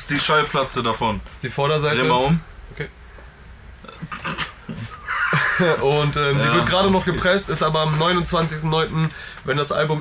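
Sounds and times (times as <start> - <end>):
man speaking: 0.0 - 2.9, 4.7 - 10.0
man laughing: 3.9 - 6.9.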